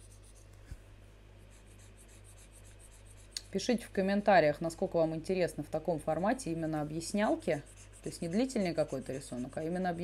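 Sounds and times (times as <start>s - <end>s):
stylus scratching on tablet: 0.0s - 0.5s, 1.4s - 3.9s, 6.5s - 10.0s
low electrical hum: 0.0s - 10.0s.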